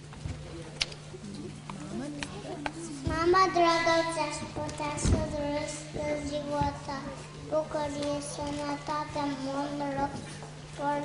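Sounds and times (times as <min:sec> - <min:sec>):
sound system hum: 0:00.0 - 0:11.0.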